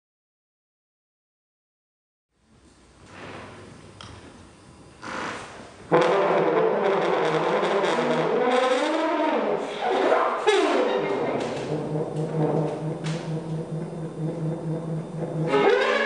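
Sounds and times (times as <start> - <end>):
trombone sliding tone: 5.9 - 16.0.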